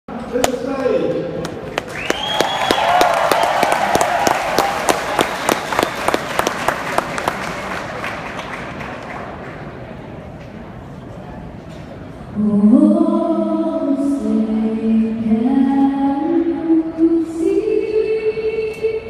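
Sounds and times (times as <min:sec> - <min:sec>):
close sharp claps: 0:00.4 - 0:09.6
crowd applauding and cheering: 0:01.7 - 0:09.8
rising whoop: 0:02.0 - 0:05.3.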